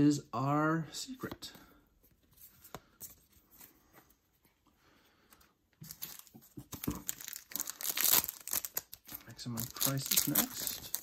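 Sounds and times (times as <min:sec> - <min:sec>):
foil wrapper crinkling and tearing: 0:05.9 - 0:11.0.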